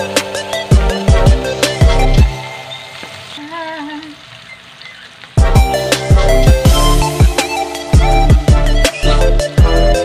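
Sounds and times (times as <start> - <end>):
background music with strong beat: 0.0 - 3.1, 5.4 - 10.0
oil sizzling in a pan: 0.0 - 10.0.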